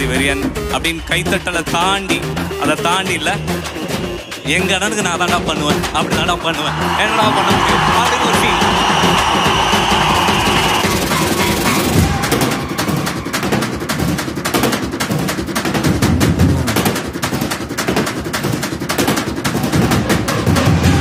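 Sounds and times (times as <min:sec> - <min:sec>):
music: 0:00.0 - 0:21.0.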